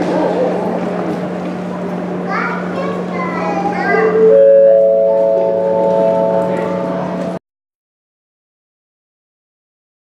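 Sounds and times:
children's voices in a crowd: 0:00.0 - 0:07.4
rising four-note chime: 0:04.0 - 0:07.4.

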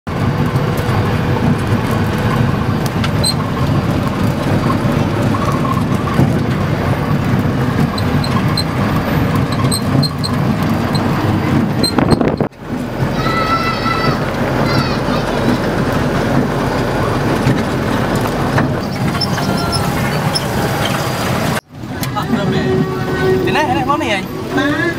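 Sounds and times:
engine and road rumble: 0:00.0 - 0:24.9.

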